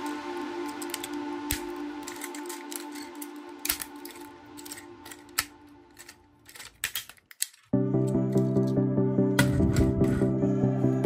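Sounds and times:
loud music track: 0.0s - 6.1s, 7.8s - 11.0s
plastic toy clicks and snaps: 0.0s - 8.7s
background music: 0.0s - 11.0s.

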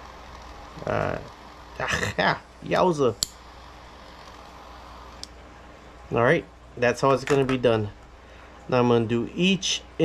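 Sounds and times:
low background hum: 0.0s - 10.0s
man talking: 0.8s - 3.2s, 6.1s - 8.0s, 8.7s - 10.0s.

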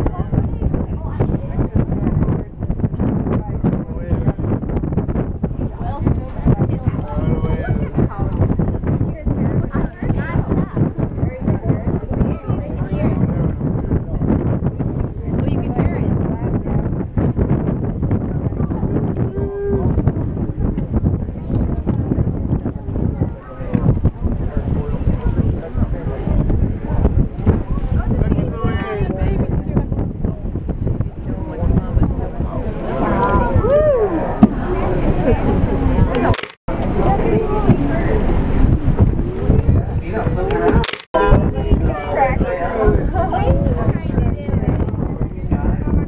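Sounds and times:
boat noise: 0.0s - 45.9s
wind and water rumble: 0.0s - 46.0s
people exclaiming: 33.1s - 34.4s.

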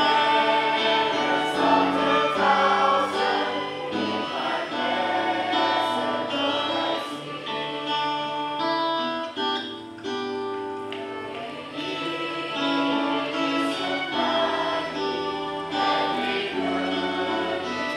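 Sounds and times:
group singing worship song: 0.0s - 8.7s, 11.0s - 17.9s
instrumental accompaniment: 0.0s - 17.9s.

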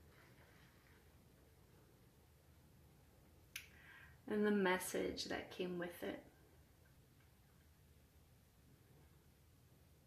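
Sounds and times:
woman's soft in-breath: 3.6s - 4.2s.

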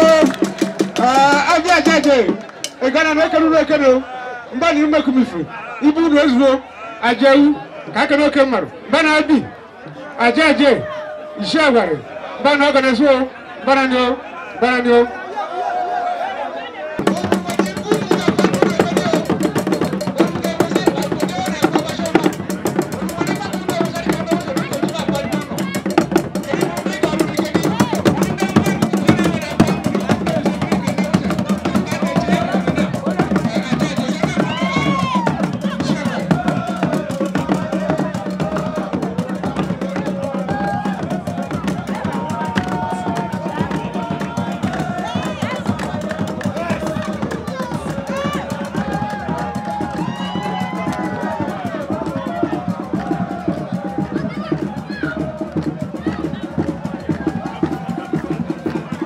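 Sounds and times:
drum and percussion ensemble: 0.0s - 3.9s, 17.0s - 59.0s
voices over drumming: 0.0s - 59.0s.

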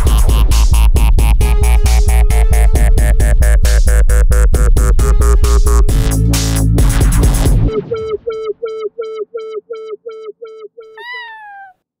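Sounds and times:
cat meow falling in pitch: 11.0s - 11.8s.

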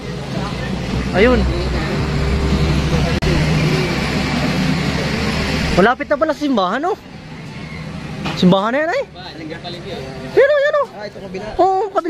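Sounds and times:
engine hum: 0.0s - 11.3s
outdoor noise: 0.0s - 12.0s.

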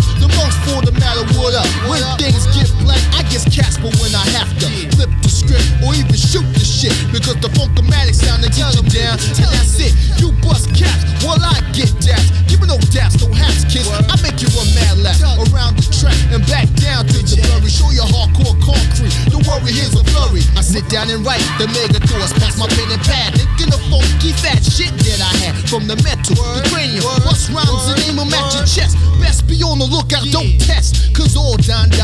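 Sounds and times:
hip hop bass and drum beat: 0.0s - 32.0s
rapping over a beat: 0.0s - 32.0s.

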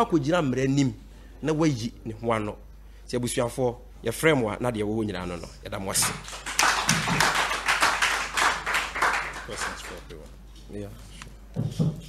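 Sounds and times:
crowd applauding: 6.0s - 10.1s.

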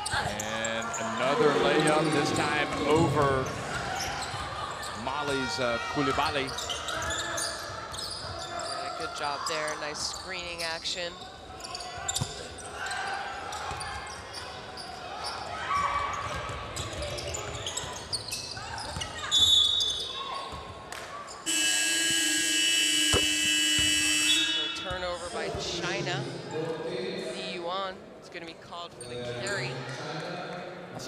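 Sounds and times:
referee's whistle: 19.3s - 20.1s, 21.4s - 25.1s
arena horn: 21.5s - 24.8s.

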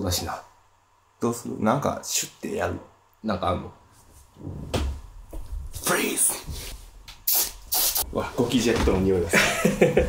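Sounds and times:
aerosol spray hissing: 7.2s - 8.0s.

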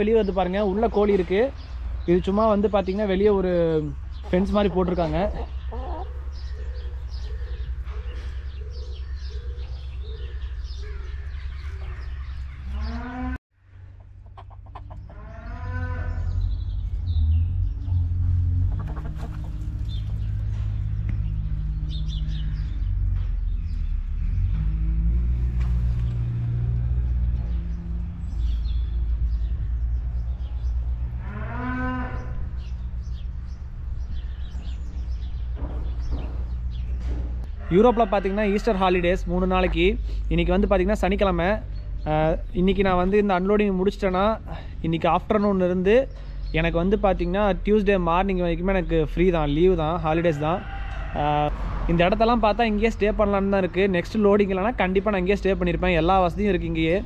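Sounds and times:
bird chirping: 0.0s - 25.0s, 25.6s - 37.6s
hens clucking: 4.2s - 8.5s, 13.9s - 16.0s, 18.6s - 20.2s
cow mooing: 12.7s - 13.4s, 15.1s - 16.4s, 31.0s - 32.6s
steady low rumble: 16.3s - 31.3s.

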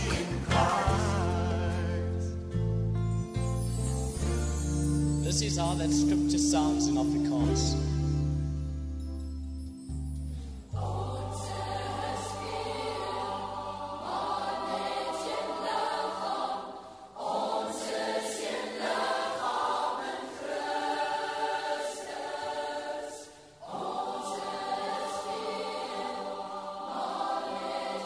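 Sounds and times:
large choir singing: 0.0s - 2.6s, 10.8s - 28.0s.

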